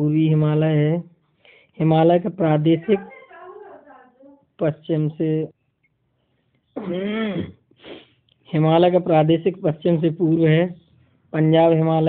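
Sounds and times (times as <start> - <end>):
short breath: 1.4 - 1.8, 7.2 - 8.3.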